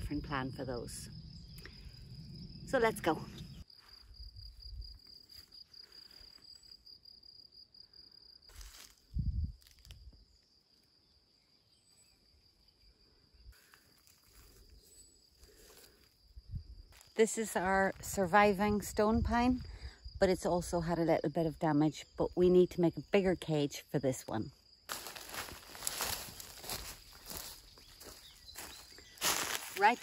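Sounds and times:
cricket trilling: 0.0 - 30.0.

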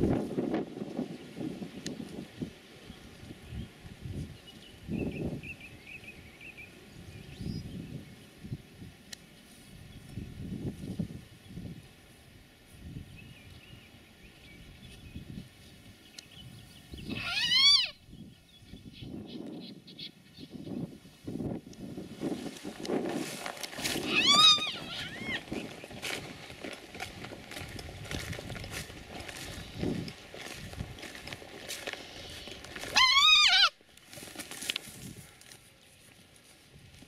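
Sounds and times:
deer fawn bleating: 17.1 - 18.0, 24.0 - 25.4, 32.9 - 33.8
rustling in long grass: 20.7 - 33.1, 33.9 - 37.0
hare screaming: 24.0 - 25.4, 32.9 - 33.8.

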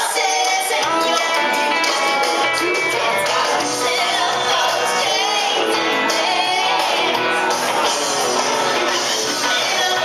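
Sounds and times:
woman singing country song: 0.0 - 7.2, 9.3 - 10.0
karaoke backing track: 0.0 - 10.0.

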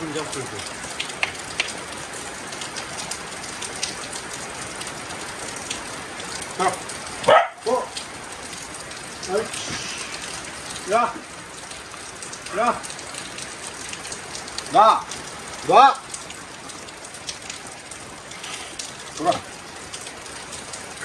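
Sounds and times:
raindrop taps: 0.0 - 15.4
steady rain: 0.0 - 21.0
dog barking: 6.6 - 8.0.

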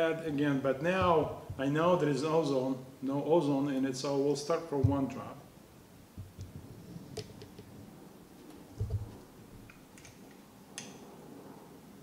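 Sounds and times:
dull low thump: 0.9 - 1.6, 8.8 - 9.2.

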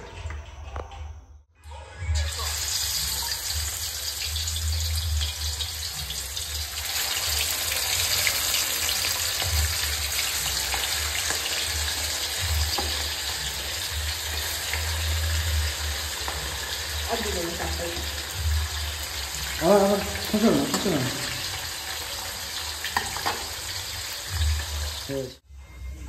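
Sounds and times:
fish sizzling in hot oil: 2.2 - 25.3.

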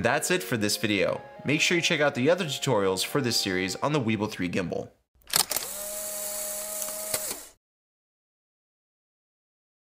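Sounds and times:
mechanical whirring hum: 5.3 - 7.6.

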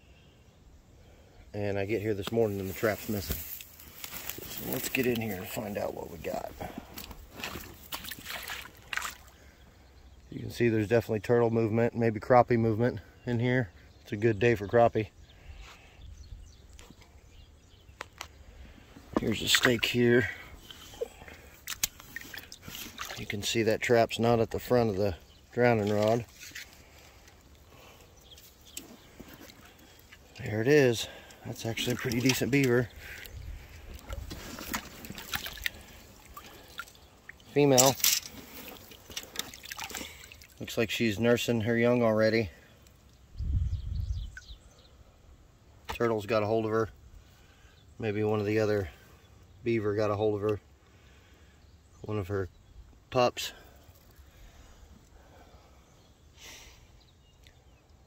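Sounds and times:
water sloshing and splashing: 2.8 - 9.4, 18.6 - 23.6, 25.6 - 41.0.

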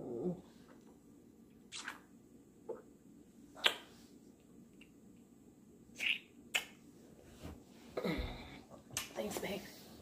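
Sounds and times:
kissing lip smacks: 3.6 - 3.9, 6.0 - 6.8.

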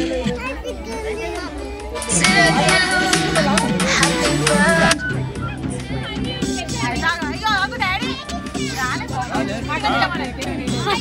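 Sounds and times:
children and adults chattering: 0.0 - 11.0.

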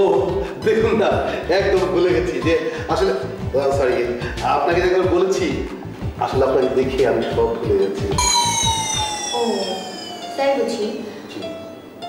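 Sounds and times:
bright bell-like ringing: 8.1 - 11.1.

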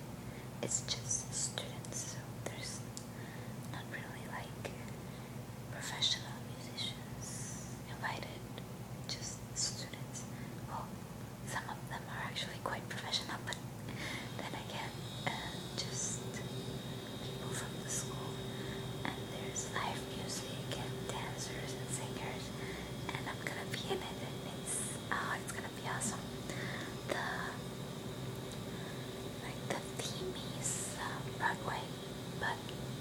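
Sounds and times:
steady low hum: 0.0 - 33.0
woman whispering: 0.6 - 3.0, 3.7 - 5.0, 5.7 - 10.9, 11.5 - 13.6, 14.3 - 27.7, 28.8 - 32.8.

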